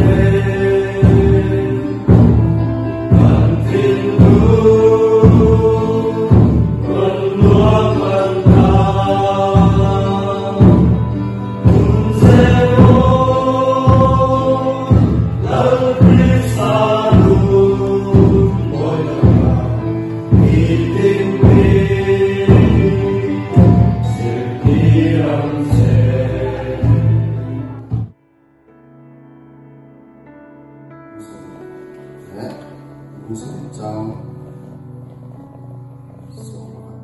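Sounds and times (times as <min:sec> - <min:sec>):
group singing slow worship song: 0:00.0 - 0:28.1
deep drum beats: 0:00.0 - 0:28.2.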